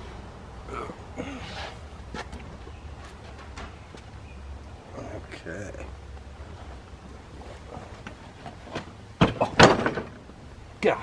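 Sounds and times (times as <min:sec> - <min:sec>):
person grunting: 0:00.7 - 0:01.6.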